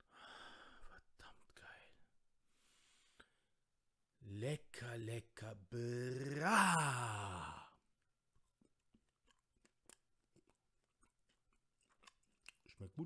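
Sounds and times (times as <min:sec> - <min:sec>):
faint chewing clicks: 0:08.3 - 0:13.0.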